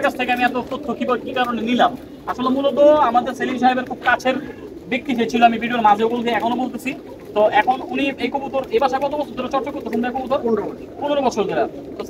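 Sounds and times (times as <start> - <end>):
men talking: 0.0 - 12.0
pigeons cooing: 0.0 - 12.0.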